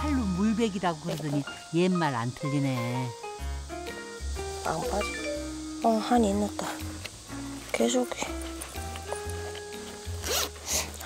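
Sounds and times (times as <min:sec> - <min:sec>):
background music: 0:00.0 - 0:11.0
zipper rasps: 0:10.2 - 0:11.0.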